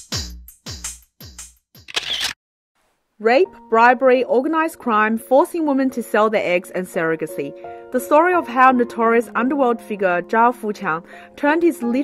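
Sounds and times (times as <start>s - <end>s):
shutter click sound effect: 1.8s - 2.4s.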